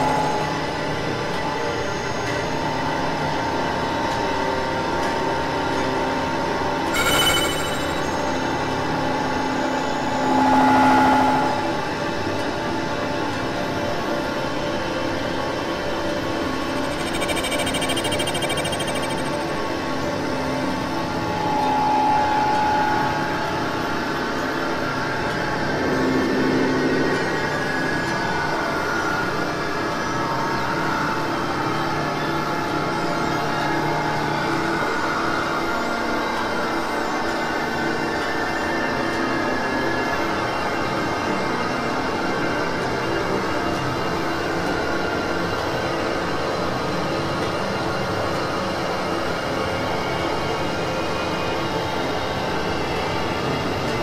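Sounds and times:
layered experimental drone music: 9.7 - 12.4, 16.6 - 19.6.

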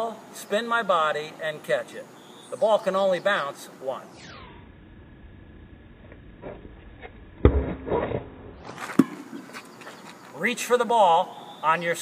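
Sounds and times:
ball bouncing on court: 8.9 - 9.4.

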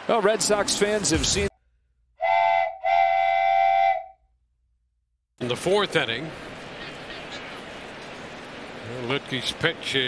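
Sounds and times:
whistle-like tone: 2.2 - 4.2.

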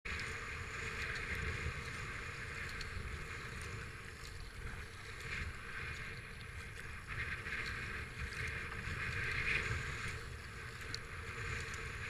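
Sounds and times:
wind rumble on microphone: 0.0 - 12.0
paddle splashing water: 0.1 - 12.0.

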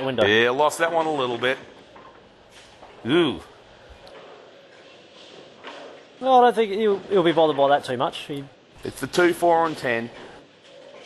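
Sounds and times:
bowling alley background noise: 0.0 - 11.0.

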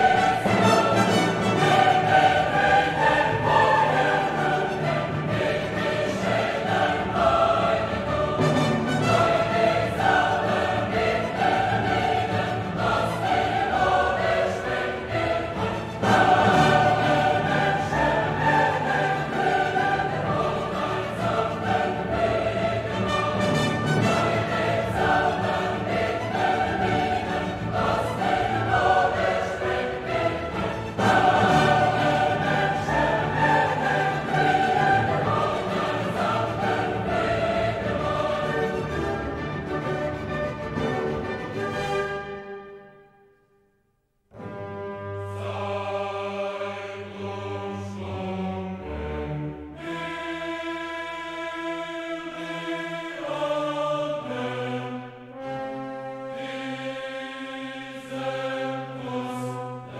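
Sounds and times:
choir singing with orchestra: 0.0 - 43.2, 44.3 - 59.9.

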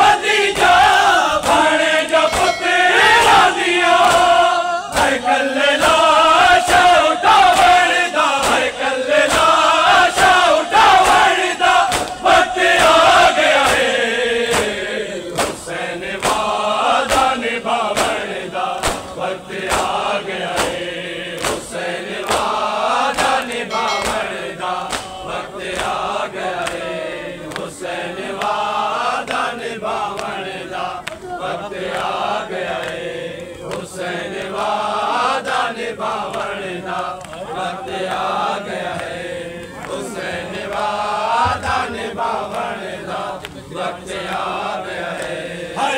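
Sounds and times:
men chanting a lament: 0.0 - 45.9
hands slapping chests: 1.4 - 2.6, 4.0 - 5.2, 7.5 - 26.9, 31.8 - 34.7.

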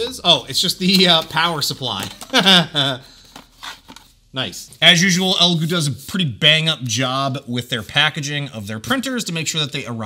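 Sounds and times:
man laughing: 2.2 - 3.1.

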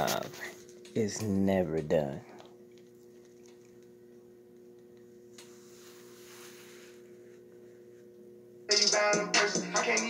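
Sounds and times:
faint electrical hum: 0.0 - 10.0
soft rustle: 5.5 - 8.1.

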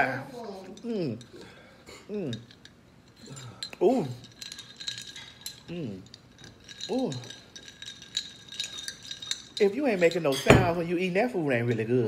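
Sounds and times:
ice cubes clinking in glass: 2.2 - 11.1.

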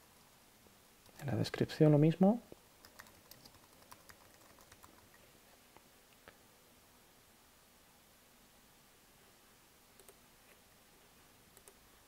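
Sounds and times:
faint keyboard typing: 2.8 - 5.3, 10.0 - 10.2, 11.5 - 11.8.

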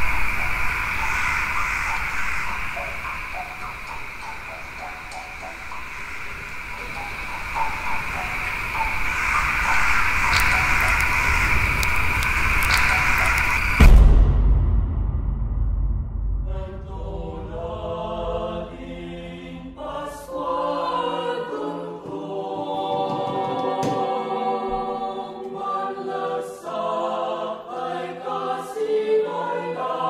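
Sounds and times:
crackling clicks: 0.0 - 13.8
high-pitched hissing drone: 0.0 - 13.9
loud low boom: 13.8 - 19.8.

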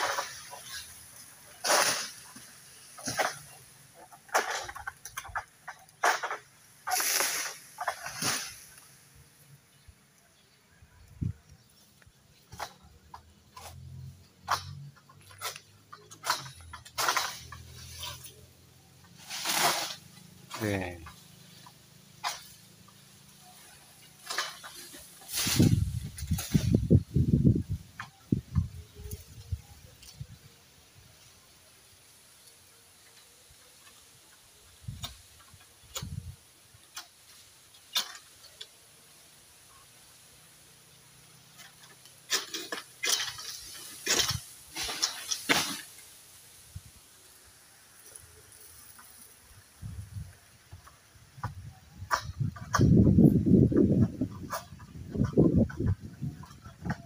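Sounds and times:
fronds rustling: 0.0 - 57.0
sickle cutting palm fronds: 0.0 - 57.0.

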